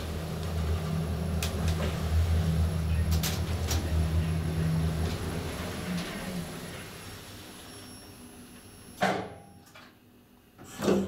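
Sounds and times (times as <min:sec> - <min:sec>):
elevator doors opening: 0:00.0 - 0:10.0
elevator ride noise: 0:00.0 - 0:11.0.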